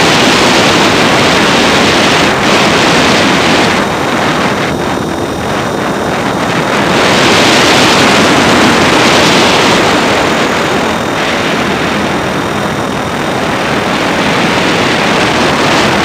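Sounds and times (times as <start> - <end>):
helicopter rotor wash: 0.0 - 16.0
high motor whine: 0.0 - 16.0
wind over microphone: 0.0 - 16.0.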